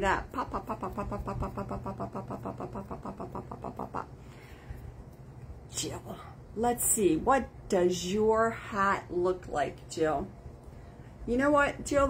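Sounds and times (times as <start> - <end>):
woman imitating popcorn popping: 0.0 - 4.1.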